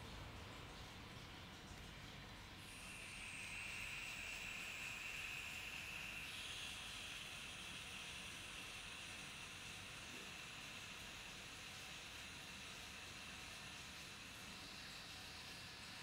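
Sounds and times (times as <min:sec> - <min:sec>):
water aspirator hissing: 0:02.6 - 0:16.0.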